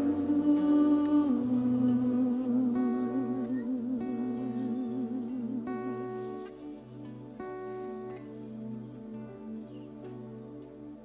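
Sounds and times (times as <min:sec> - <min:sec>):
woman singing with vibrato: 0:00.0 - 0:06.4
soft guitar: 0:00.0 - 0:11.0.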